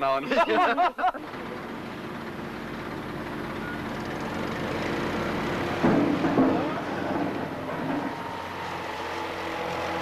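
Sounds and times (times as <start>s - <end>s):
distant machinery rumble: 0.6s - 10.0s.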